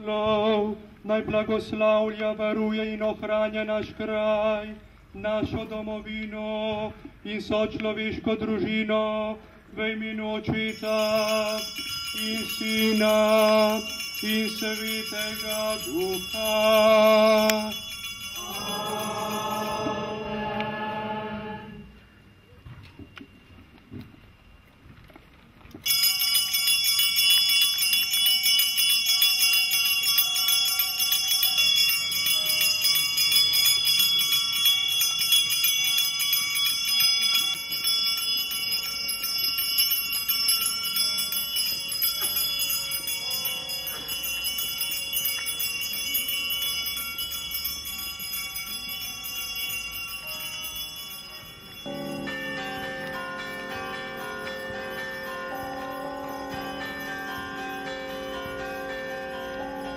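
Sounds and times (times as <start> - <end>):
low steady tones: 9.4 - 25.7, 30.5 - 59.9
small hand bells ringing: 10.6 - 20.5, 25.8 - 59.9.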